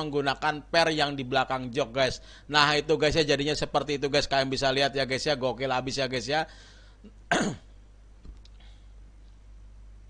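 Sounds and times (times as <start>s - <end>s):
man clearing throat: 7.1s - 7.8s
faint clicks: 8.2s - 8.6s.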